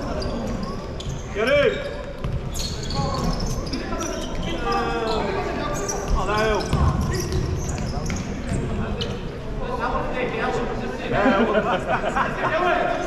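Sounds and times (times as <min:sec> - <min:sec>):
shoes squealing on court: 0:00.0 - 0:09.4
spectator chatter: 0:00.0 - 0:13.0.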